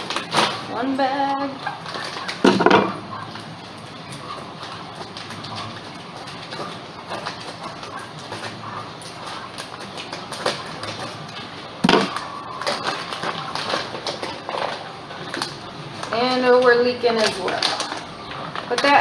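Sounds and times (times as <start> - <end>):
plastic bag crinkling: 0.0 - 19.0.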